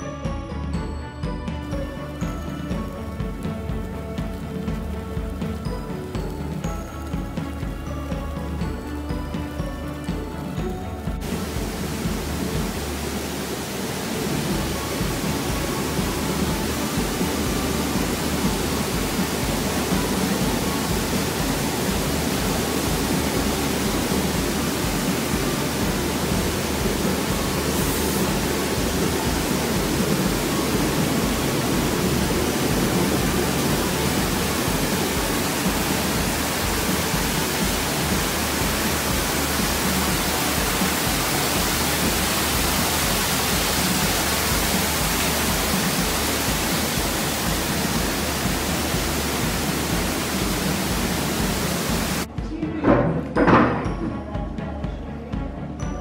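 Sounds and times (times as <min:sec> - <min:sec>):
rushing water: 0:00.0 - 0:52.3
whirlpool jets churning water: 0:00.0 - 0:52.3.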